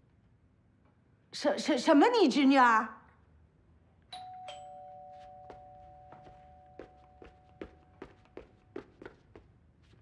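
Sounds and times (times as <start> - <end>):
two-tone doorbell chime: 4.1 - 7.5.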